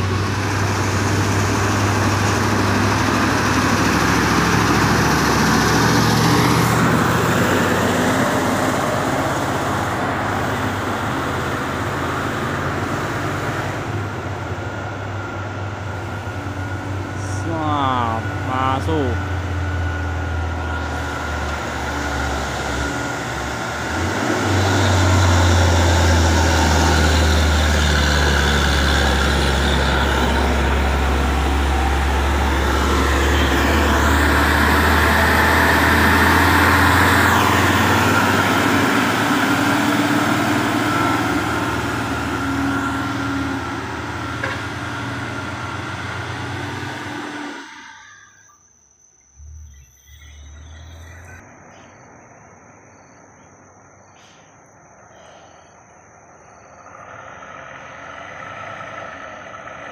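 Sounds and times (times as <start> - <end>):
diesel truck engine droning: 0.0 - 48.7, 49.4 - 52.2, 55.2 - 59.9.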